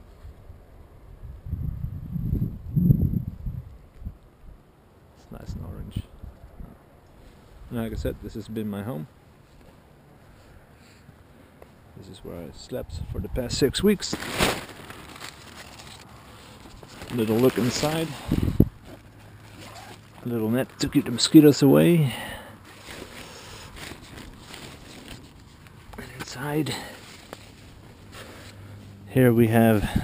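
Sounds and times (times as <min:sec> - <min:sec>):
faint background noise: 0:00.0 - 0:30.0
wind buffeting microphone: 0:01.2 - 0:04.2, 0:17.9 - 0:18.8, 0:29.7 - 0:30.0
brief rustle: 0:14.1 - 0:20.2.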